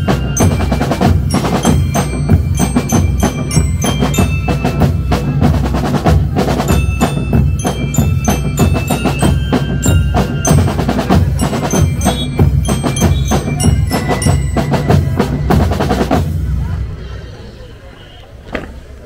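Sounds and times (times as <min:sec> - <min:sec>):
bell-like mallet notes: 0:00.0 - 0:16.4
marching drums and cymbals: 0:00.0 - 0:17.3.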